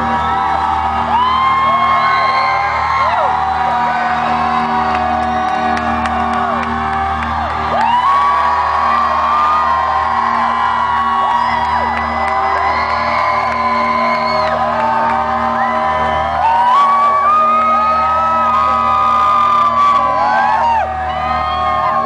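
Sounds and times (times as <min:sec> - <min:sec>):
crowd whooping: 0:00.0 - 0:22.0
rock band holding a chord: 0:00.0 - 0:22.0.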